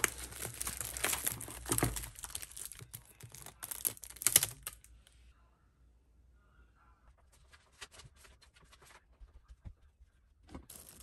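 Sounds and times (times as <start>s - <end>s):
plastic sleeves crinkling and clicking: 0.0s - 4.9s.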